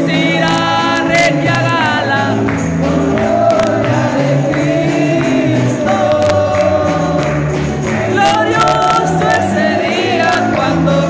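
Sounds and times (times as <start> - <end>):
congregation singing a hymn: 0.0 - 11.0
instruments playing bass line: 0.0 - 11.0
hand-clapping: 0.1 - 11.0.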